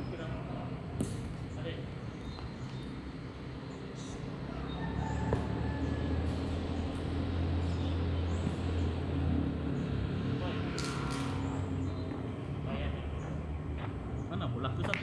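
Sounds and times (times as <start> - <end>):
low engine rumble: 0.0 - 15.0.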